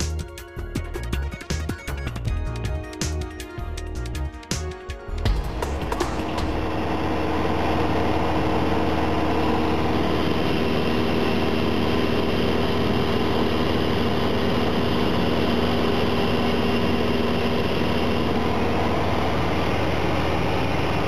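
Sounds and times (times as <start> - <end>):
airplane engine drone in cabin: 5.0 - 21.0.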